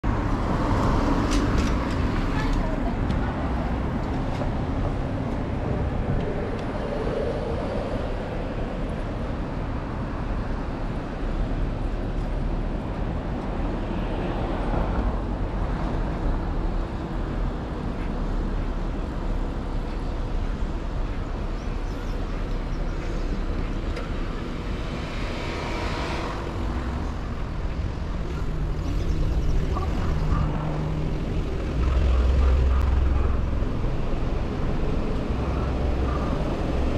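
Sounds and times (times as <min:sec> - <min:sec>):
road traffic: 0:00.0 - 0:36.9.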